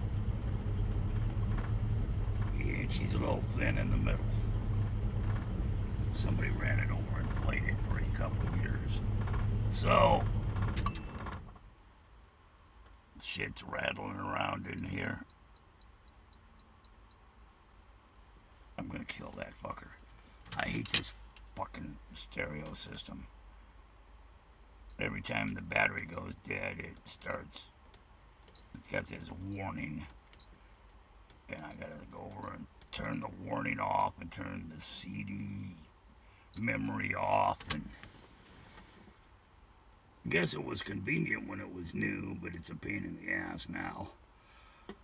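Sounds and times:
car stereo beeping: 2.5s - 4.3s, 14.8s - 17.2s, 24.9s - 25.2s, 27.2s - 27.5s, 28.5s - 29.8s, 31.6s - 33.3s, 36.6s - 37.5s.

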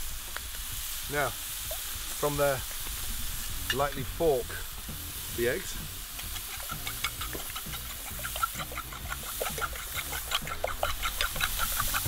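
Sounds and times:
mushrooms sizzling in a pan: 0.0s - 12.0s
fork beating eggs in a bowl: 5.8s - 12.0s.

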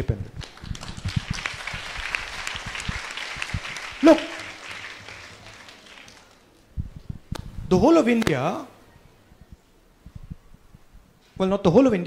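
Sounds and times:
audience applauding: 0.4s - 6.6s.

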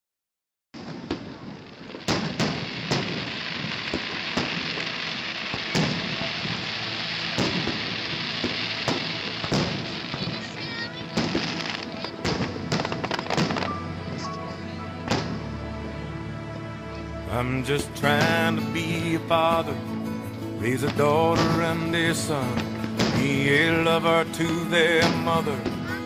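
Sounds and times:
fireworks bursting with sharp bangs: 0.8s - 15.5s, 18.0s - 26.0s.

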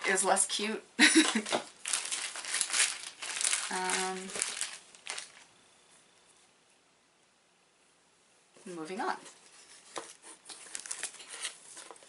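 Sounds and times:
packaging crinkling and rustling: 1.1s - 5.5s, 9.4s - 12.0s.

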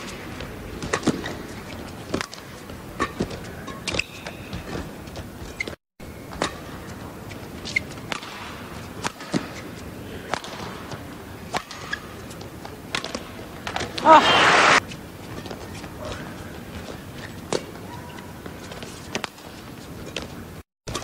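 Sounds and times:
arena crowd hum: 13.4s - 14.8s.

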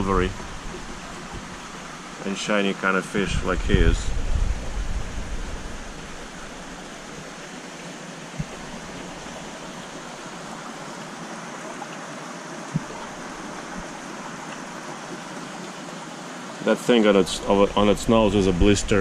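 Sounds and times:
water rushing through filtration: 0.0s - 19.0s.

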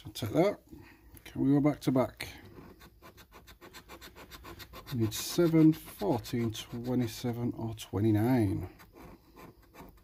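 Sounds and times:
scratchcard coating being scraped: 2.4s - 7.6s, 8.3s - 10.0s.

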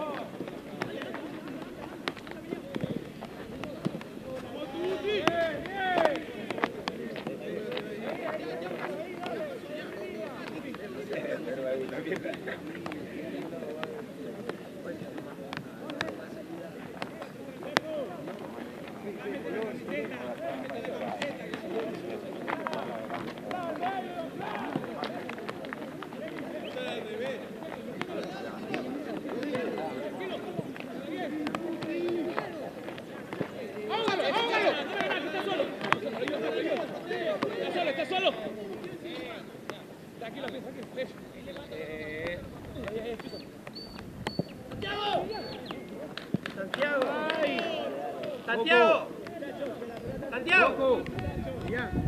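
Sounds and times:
many voices calling out: 0.0s - 39.6s, 44.7s - 52.0s.

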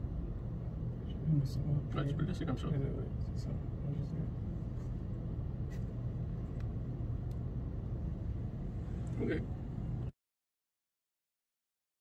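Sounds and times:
low background rumble: 0.0s - 10.1s.

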